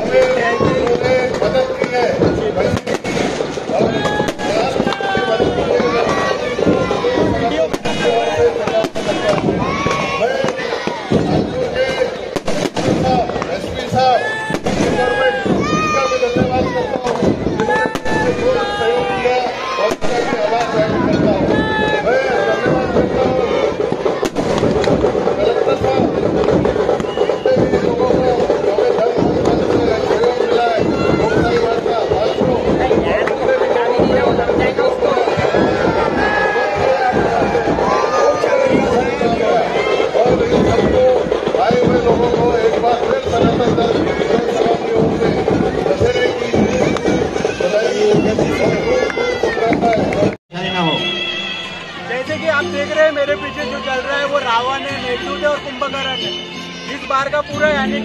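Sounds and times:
firecrackers banging: 0:00.0 - 0:50.4
crowd voices: 0:00.0 - 0:58.0.

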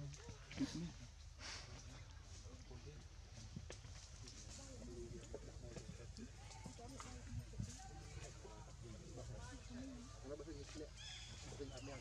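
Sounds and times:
voices chattering: 0:04.6 - 0:12.0.

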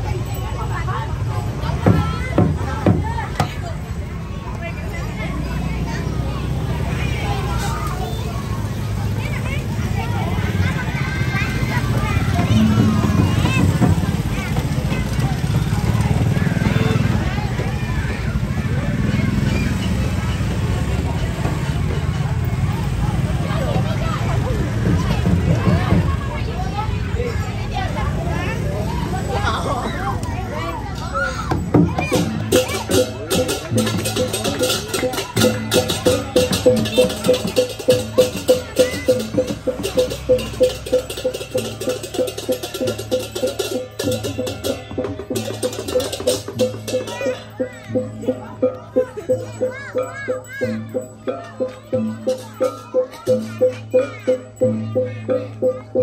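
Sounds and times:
crowd talking: 0:00.0 - 0:56.0
rapid cymbal clatter: 0:05.6 - 0:29.3, 0:31.5 - 0:56.0.

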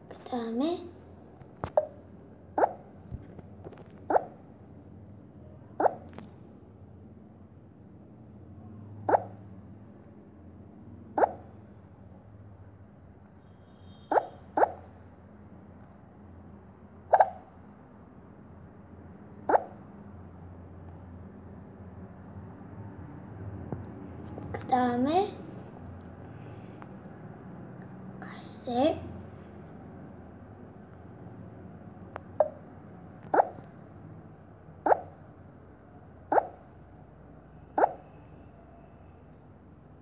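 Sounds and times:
child hiccuping: 0:17.1 - 0:17.5.

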